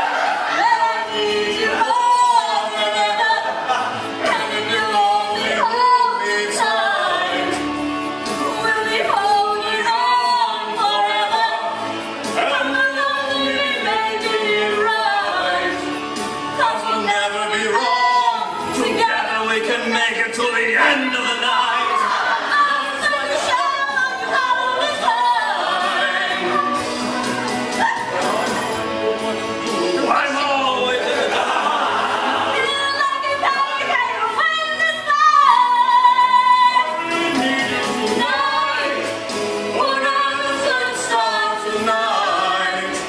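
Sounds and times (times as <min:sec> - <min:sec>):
musical accompaniment: 0:00.0 - 0:43.0
person singing with vibrato: 0:00.4 - 0:30.5, 0:32.4 - 0:43.0.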